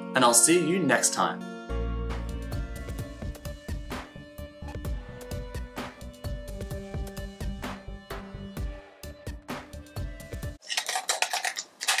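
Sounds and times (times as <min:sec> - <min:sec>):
music: 0:00.0 - 0:10.6
plastic figurines clacking together: 0:10.6 - 0:12.0.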